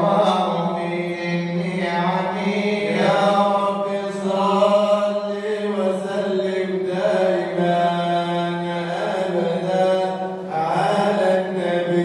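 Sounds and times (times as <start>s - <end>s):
man chanting into a microphone: 0.0s - 12.0s.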